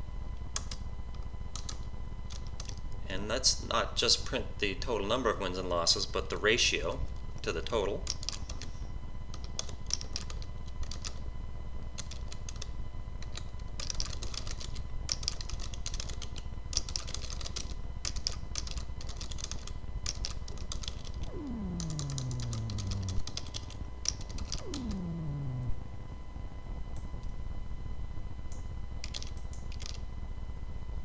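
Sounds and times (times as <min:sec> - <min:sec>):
computer keyboard typing: 0:01.5 - 0:02.8, 0:08.0 - 0:08.7, 0:09.3 - 0:11.2, 0:12.0 - 0:25.2, 0:29.0 - 0:30.0
falling tones: 0:21.2 - 0:23.7, 0:24.4 - 0:26.2.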